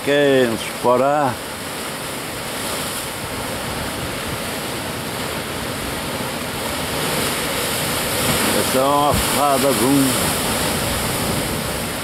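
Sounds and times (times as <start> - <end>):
surf washing over rocky shore: 0.0 - 12.0.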